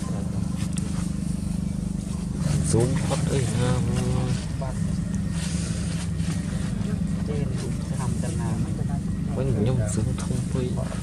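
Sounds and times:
motor droning: 0.0 - 11.0.

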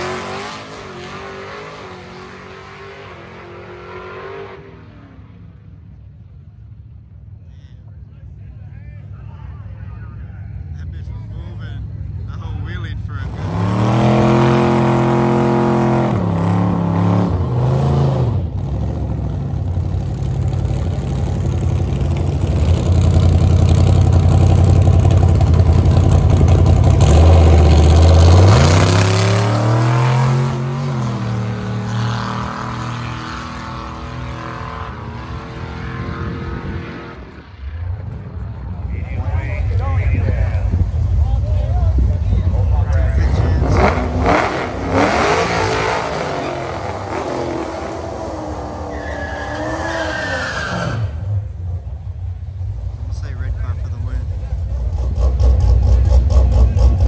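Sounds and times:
car engines revving: 0.0 - 57.0.

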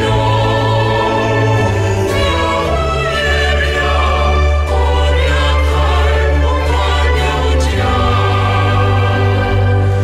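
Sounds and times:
voices singing gospel: 0.0 - 10.0.

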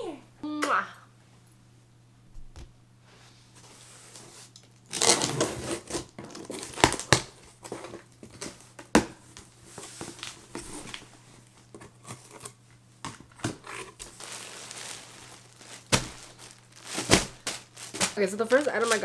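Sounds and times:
packing tape ripping: 4.6 - 7.4, 13.4 - 19.0
cardboard rustling and crinkling: 9.7 - 12.6, 13.2 - 19.0.

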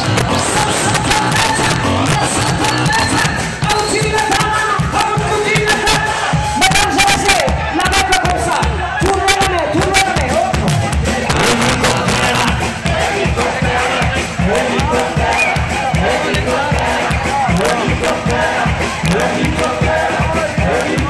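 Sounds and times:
crowd shouting and cheering: 0.0 - 21.0
dance music through a pa: 0.0 - 21.0
voices over music: 0.0 - 21.0.

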